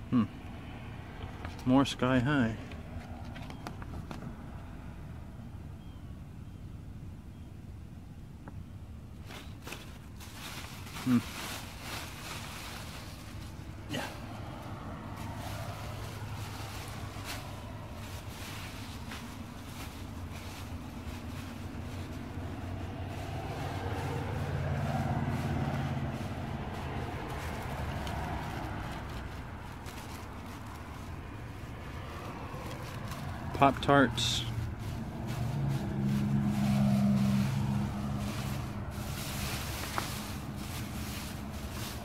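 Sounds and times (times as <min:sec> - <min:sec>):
plastic bags crinkling: 0:09.2 - 0:13.8, 0:15.2 - 0:33.6, 0:34.2 - 0:42.0
vehicle engine running: 0:09.3 - 0:42.0.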